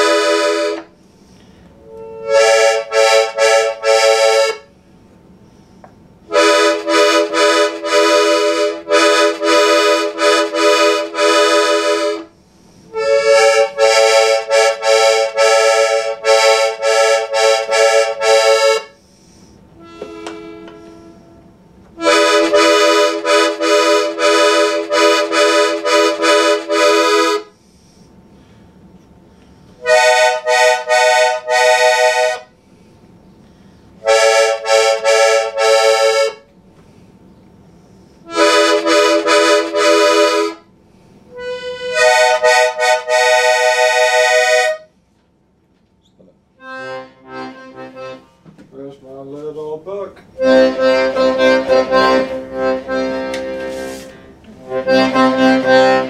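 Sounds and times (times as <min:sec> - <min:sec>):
accordion reedy notes: 0:00.0 - 0:01.0, 0:01.7 - 0:04.8, 0:06.2 - 0:27.6, 0:29.8 - 0:32.6, 0:33.9 - 0:36.5, 0:38.2 - 0:40.7, 0:41.3 - 0:44.9, 0:46.5 - 0:48.4, 0:50.3 - 0:56.0.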